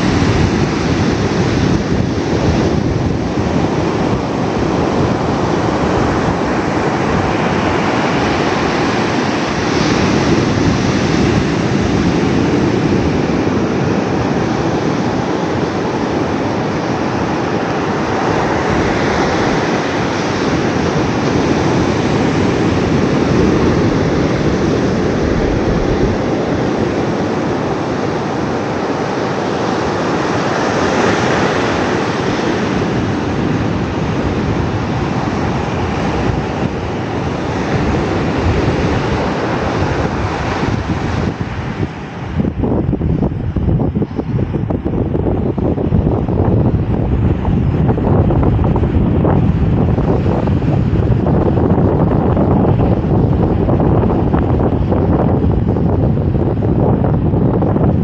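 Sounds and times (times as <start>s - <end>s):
ocean waves roaring: 0.0s - 58.0s.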